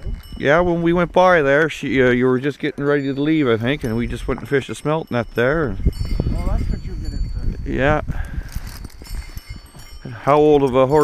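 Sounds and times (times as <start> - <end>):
sleigh bells jingling: 0.0 - 11.0.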